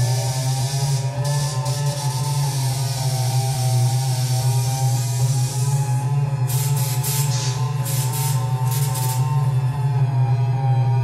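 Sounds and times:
steady low electronic hum: 0.0 - 11.0.

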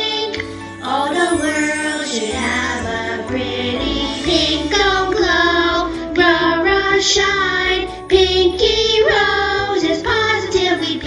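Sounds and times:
pop backing music with bass: 0.0 - 11.0
high voice singing: 0.8 - 6.6.

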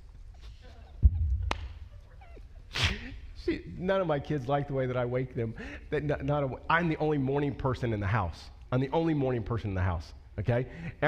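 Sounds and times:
low thump: 1.0 - 1.6.

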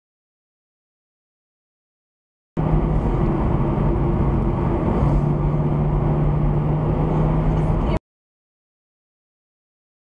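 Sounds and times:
car engine drone: 2.6 - 8.0.

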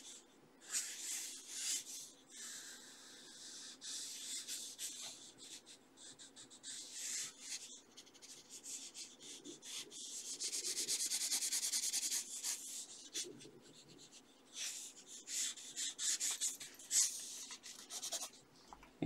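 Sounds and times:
pencil scribbling on paper: 0.0 - 18.4.

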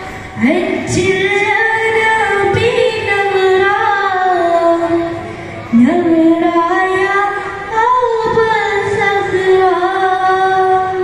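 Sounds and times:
boy singing into a microphone: 0.4 - 11.0.

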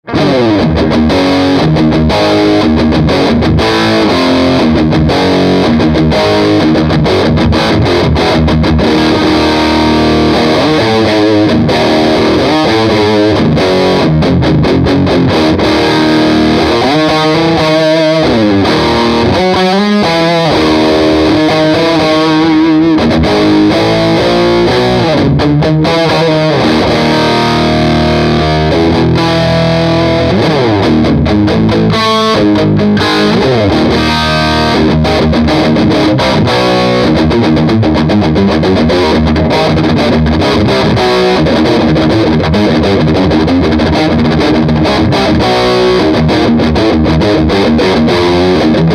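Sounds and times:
distorted electric guitar: 0.0 - 48.9.

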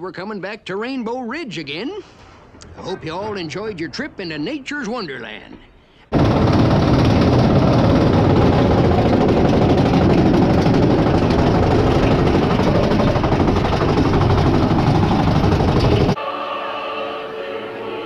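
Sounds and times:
roller coaster rumbling on rails: 6.1 - 16.2.

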